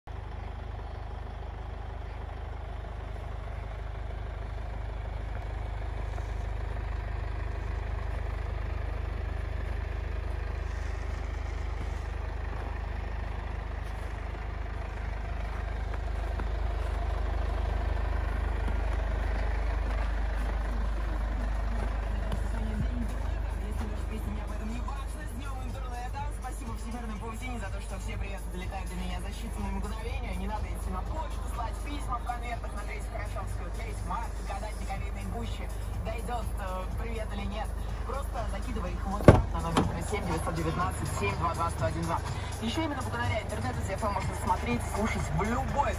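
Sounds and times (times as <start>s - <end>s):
diesel van engine idling: 0.0s - 45.9s.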